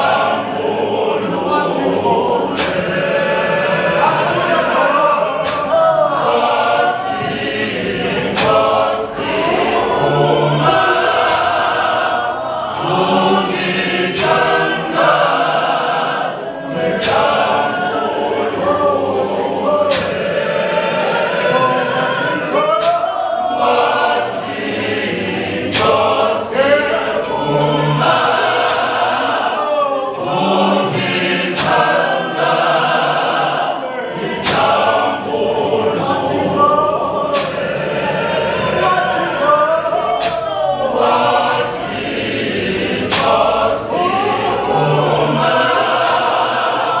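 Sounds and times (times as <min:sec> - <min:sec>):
choir singing in harmony: 0:00.0 - 0:47.0.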